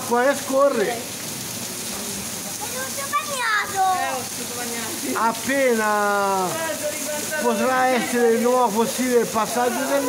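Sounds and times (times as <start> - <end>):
heavy rain on pavement: 0.0 - 10.0
running water: 0.0 - 10.0.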